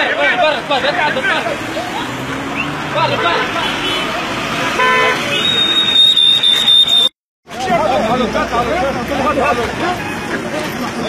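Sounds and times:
voices outdoors: 0:00.0 - 0:11.0
car horn toot: 0:03.1 - 0:07.1.

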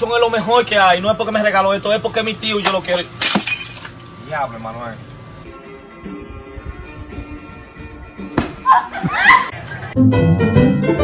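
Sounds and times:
glass bottle smashing: 0:03.2 - 0:04.0
glass shards ringing: 0:03.2 - 0:04.0.

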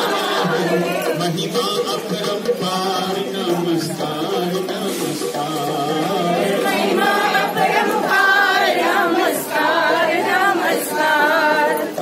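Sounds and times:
group singing unaccompanied: 0:00.0 - 0:12.0.

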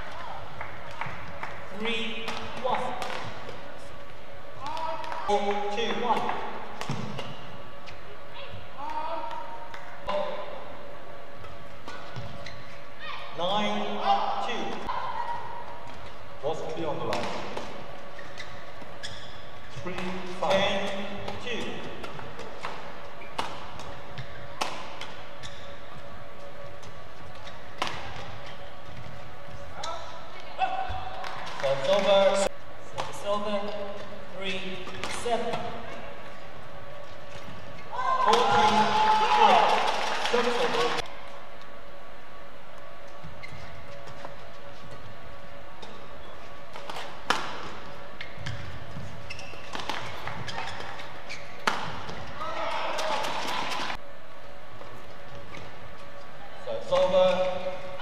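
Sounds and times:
rackets striking shuttlecock: 0:19.9 - 0:25.4, 0:27.3 - 0:28.6, 0:46.7 - 0:48.7, 0:49.6 - 0:52.3
players shouting: 0:37.9 - 0:41.0, 0:52.3 - 0:54.0.

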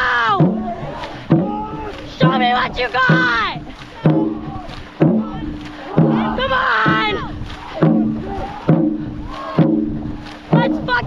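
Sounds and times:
drum beating steady rhythm: 0:00.0 - 0:11.0
paddles splashing water: 0:00.0 - 0:11.0.

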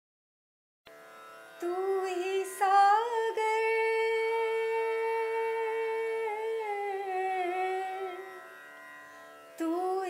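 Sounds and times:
woman singing long note: 0:01.6 - 0:08.4.

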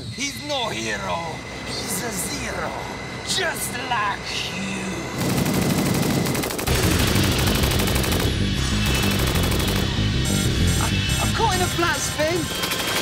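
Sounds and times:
machine-gun fire: 0:05.2 - 0:10.1, 0:12.6 - 0:13.0
loud action music: 0:06.7 - 0:13.0.

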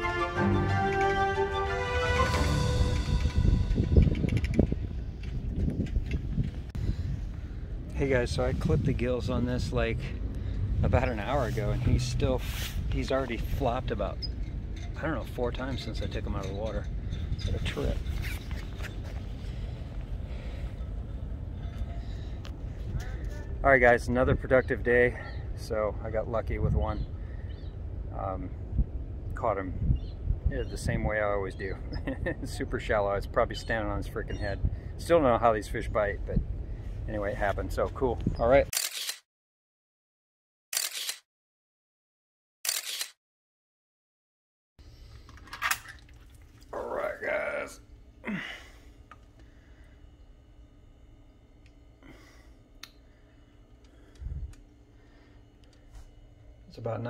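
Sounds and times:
low hum: 0:00.0 - 0:38.6, 0:44.8 - 0:57.0
wind buffeting microphone: 0:02.7 - 0:24.6, 0:26.4 - 0:31.2, 0:54.2 - 0:54.6.

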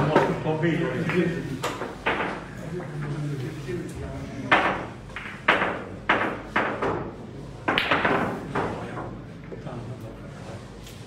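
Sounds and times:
billiard balls clacking: 0:00.0 - 0:03.2, 0:04.4 - 0:09.1.

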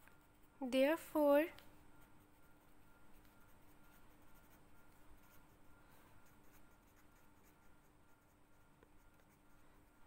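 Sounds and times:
faint steady hum: 0:00.0 - 0:10.0
ballpoint pen scratching on paper: 0:06.2 - 0:10.0.

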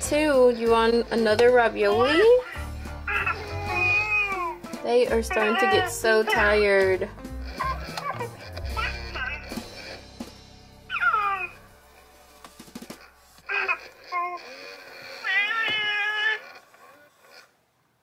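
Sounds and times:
soft background music: 0:00.0 - 0:14.7
doll's recorded baby cries: 0:02.3 - 0:04.6, 0:05.3 - 0:06.5, 0:07.4 - 0:10.1, 0:10.9 - 0:11.6, 0:13.5 - 0:17.5.

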